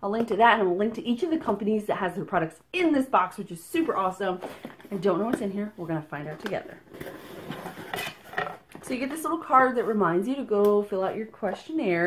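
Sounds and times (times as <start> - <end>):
box packaging rustling: 4.0 - 9.3.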